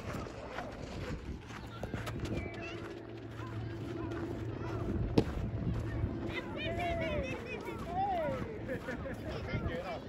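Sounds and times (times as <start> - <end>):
distant children's voices: 0.0 - 10.0
steady low rumble: 0.0 - 10.0.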